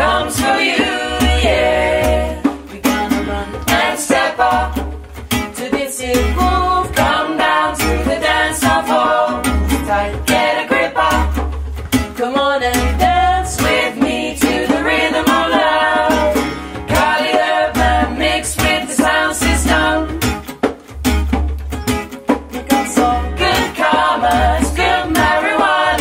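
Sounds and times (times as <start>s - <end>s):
pulsing bass line: 0.0s - 2.4s, 6.1s - 12.1s, 12.7s - 22.0s, 22.7s - 26.0s
choir singing reggae song: 0.0s - 20.6s, 22.6s - 26.0s
acoustic guitar strumming: 0.0s - 26.0s.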